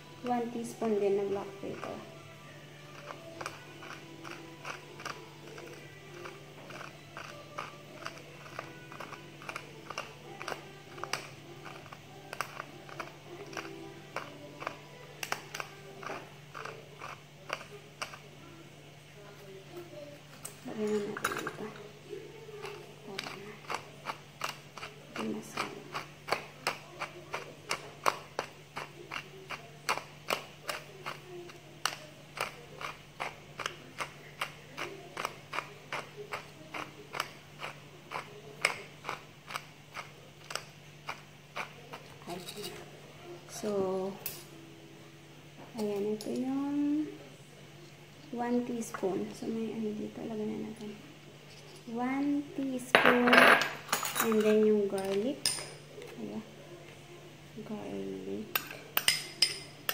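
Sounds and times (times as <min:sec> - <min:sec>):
pepper mill grinding: 0:00.2 - 0:18.4, 0:22.4 - 0:42.9.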